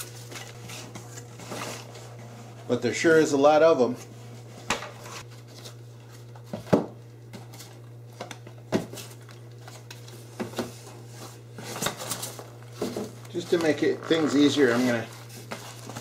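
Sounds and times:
steady low hum: 0:00.0 - 0:16.0
boxes knocking and rustling: 0:10.3 - 0:16.0.

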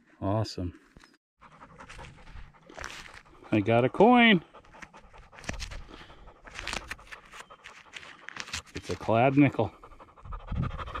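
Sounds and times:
panting breaths: 0:01.4 - 0:11.0.

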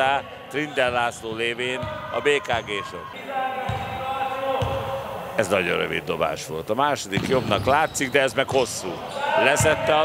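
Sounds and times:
basketball bouncing on gym floor: 0:03.7 - 0:04.0, 0:04.6 - 0:04.9.

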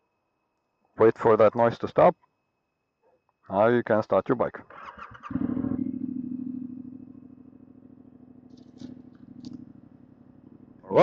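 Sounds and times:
motorcycle engine idling: 0:04.7 - 0:11.0.

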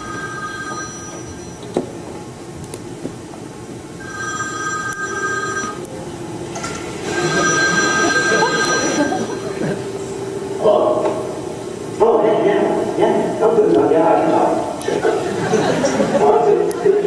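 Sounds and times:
mobile phone ringing: 0:00.0 - 0:01.7, 0:04.0 - 0:05.9, 0:07.0 - 0:09.6.

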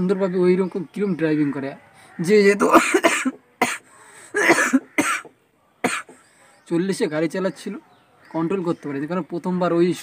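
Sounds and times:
man coughing: 0:02.6 - 0:06.2.

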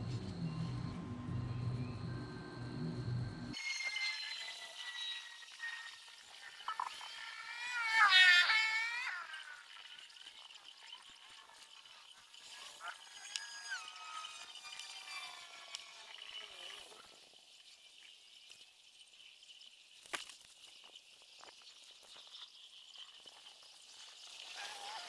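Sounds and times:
high-pitched animal calls: 0:06.7 - 0:09.6, 0:12.6 - 0:16.7.

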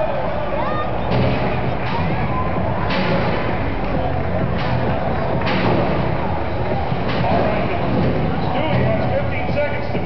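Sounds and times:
rough rumbling arena noise: 0:00.0 - 0:10.0.

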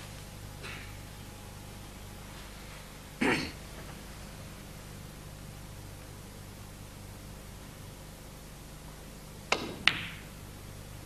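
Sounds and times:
cue striking ball click: 0:09.5 - 0:10.3
snooker balls knocking: 0:09.5 - 0:10.3.

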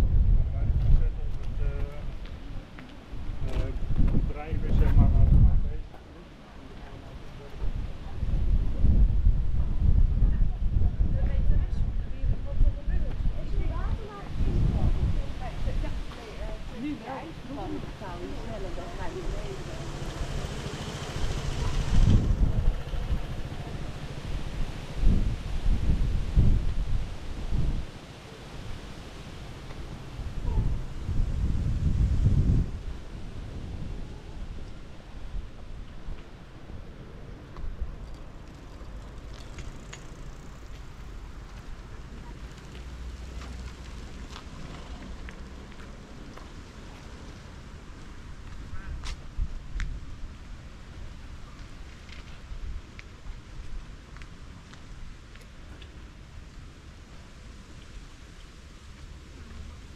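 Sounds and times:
wind buffeting microphone: 0:00.0 - 0:05.9, 0:07.5 - 0:28.0, 0:29.8 - 0:43.4
motor scooter passing: 0:17.2 - 0:25.8.

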